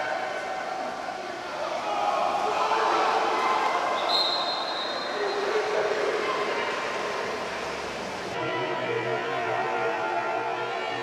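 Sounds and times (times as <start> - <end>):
voices echoing in pool hall: 0.0 - 11.0
referee whistle blast: 4.0 - 5.2.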